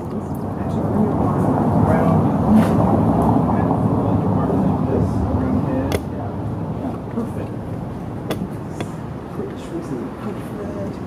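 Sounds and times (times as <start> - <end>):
passing vehicle rumble: 0.0 - 11.0.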